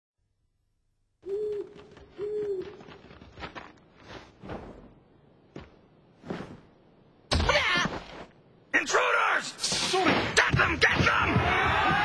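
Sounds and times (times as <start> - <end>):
owl hooting: 1.2 - 3.1.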